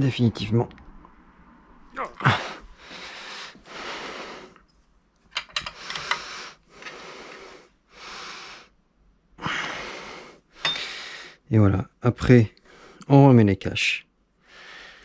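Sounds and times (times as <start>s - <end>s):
man breathing: 2.2s - 4.7s, 5.6s - 8.8s, 9.4s - 11.5s, 12.6s - 13.0s, 14.4s - 15.0s.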